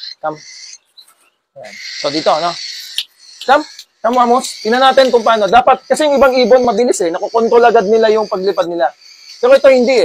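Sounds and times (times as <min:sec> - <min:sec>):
man calling a bird: 0:00.0 - 0:00.8, 0:01.6 - 0:10.0
faint high bird chirp: 0:00.0 - 0:10.0.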